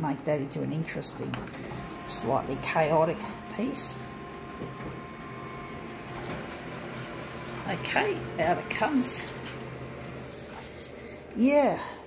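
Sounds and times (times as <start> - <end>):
photocopier humming: 0.0 - 12.0.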